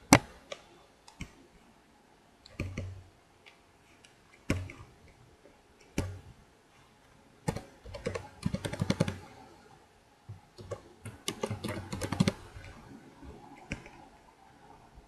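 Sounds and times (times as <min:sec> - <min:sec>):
typing on computer keyboard: 0:02.4 - 0:03.0, 0:07.5 - 0:09.4, 0:10.5 - 0:12.8, 0:13.6 - 0:14.0.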